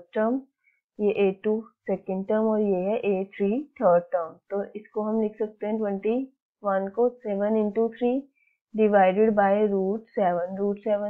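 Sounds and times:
person talking: 0:01.0 - 0:08.2, 0:08.8 - 0:11.0.

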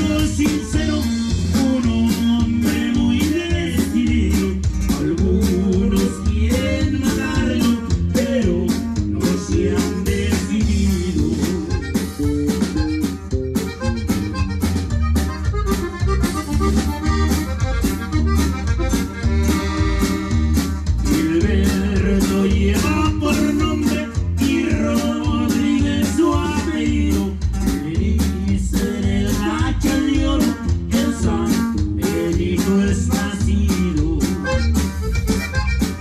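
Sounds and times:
button accordion melody: 0:00.0 - 0:27.8, 0:29.2 - 0:32.2, 0:32.9 - 0:36.0
bass line: 0:00.0 - 0:36.0
drum kit steady beat: 0:00.0 - 0:36.0.

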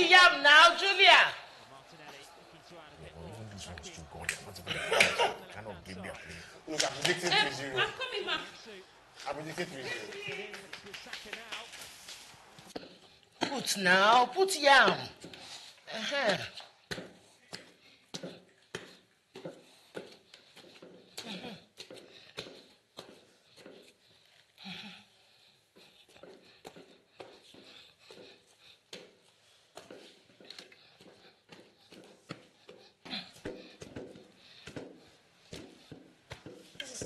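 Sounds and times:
pestle pounding in wooden mortar: 0:29.8 - 0:37.0.

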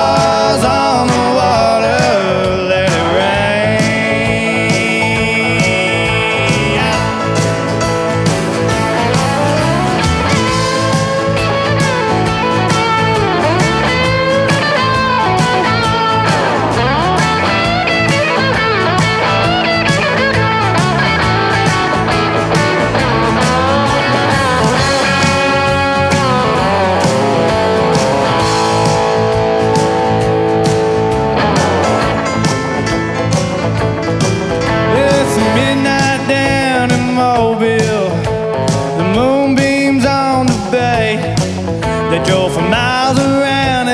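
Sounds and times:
bass guitar: 0:00.0 - 0:43.9
drums: 0:00.0 - 0:43.9
electric guitar lead: 0:00.0 - 0:43.9.

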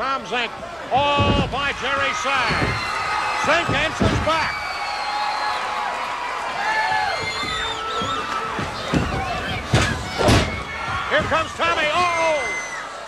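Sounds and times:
arena crowd shouting: 0:00.0 - 0:13.0
wrestlers hitting the ring: 0:00.6 - 0:12.8.

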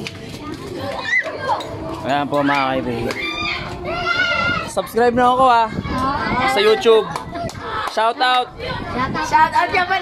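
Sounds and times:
children and adults talking: 0:00.0 - 0:10.0
high child's call: 0:03.2 - 0:04.7.

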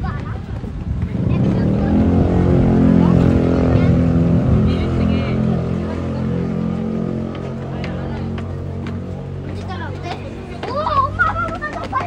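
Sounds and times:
vehicle engine droning: 0:00.9 - 0:11.6.

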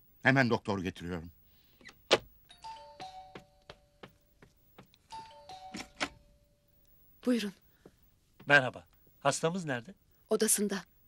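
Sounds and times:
three-note doorbell chime: 0:02.5 - 0:04.0, 0:05.1 - 0:06.6.

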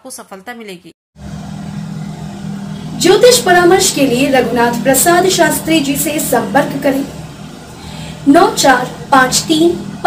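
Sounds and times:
steady low hum: 0:01.2 - 0:10.0.

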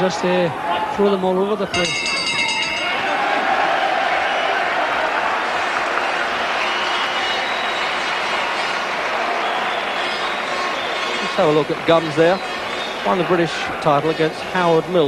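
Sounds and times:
boxing ring bell: 0:01.7 - 0:03.2
crowd applauding: 0:02.5 - 0:13.7.

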